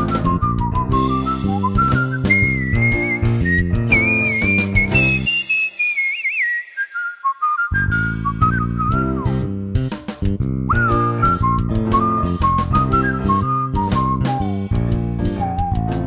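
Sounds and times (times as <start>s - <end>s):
instrumental backing music: 0.0s - 6.9s, 7.7s - 16.0s
whistled melody: 0.0s - 9.6s, 10.6s - 16.0s.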